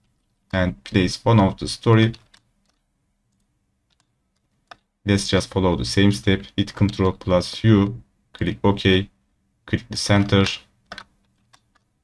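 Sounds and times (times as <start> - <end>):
faint low steady hum: 0.0 - 12.0
person speaking: 0.4 - 2.4, 5.0 - 11.1
computer mouse clicks: 2.0 - 4.9, 10.1 - 12.0.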